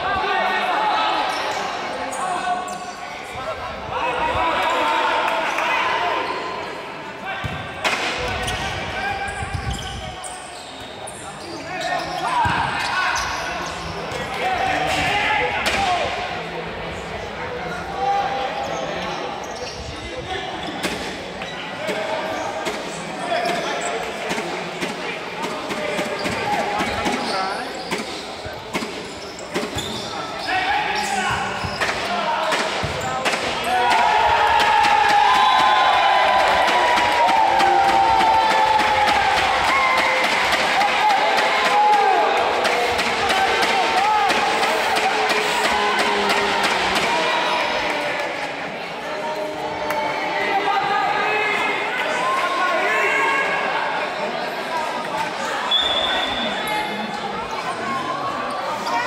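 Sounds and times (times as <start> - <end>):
players shouting in hall: 33.6 - 48.7.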